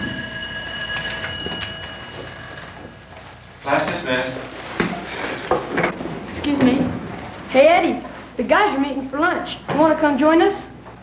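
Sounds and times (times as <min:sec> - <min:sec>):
school bell ringing: 0:00.0 - 0:04.6.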